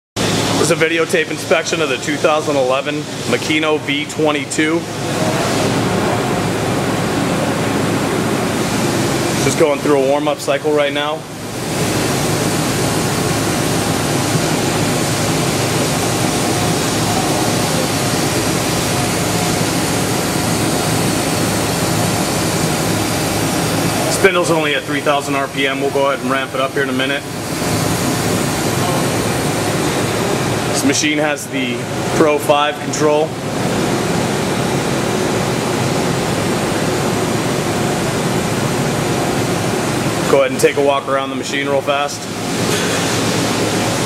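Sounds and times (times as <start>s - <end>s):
machine spindle hiss and hum: 0.2s - 44.0s.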